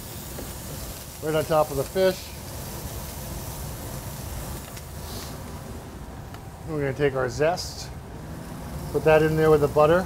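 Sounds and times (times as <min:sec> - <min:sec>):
fish sizzling in a pan: 0:00.0 - 0:05.5.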